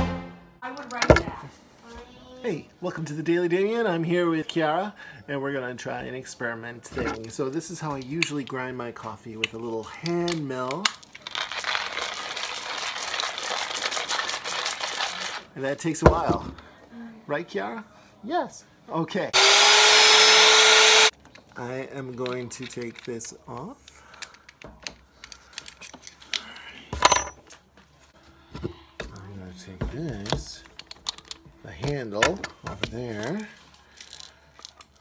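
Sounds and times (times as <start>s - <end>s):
hand coffee grinder crunching beans: 11.0s - 15.4s.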